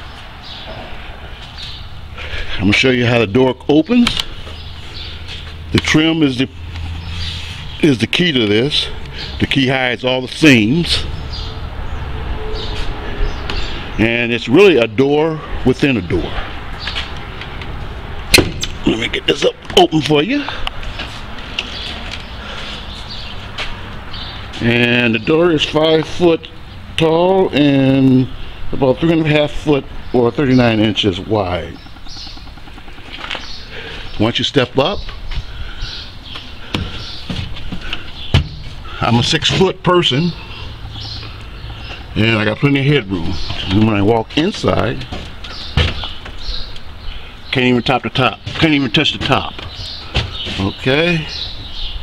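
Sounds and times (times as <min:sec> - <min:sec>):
low outdoor rumble: 0:00.2 - 0:51.8
footsteps knocking on wood: 0:36.7 - 0:38.7, 0:45.0 - 0:46.4.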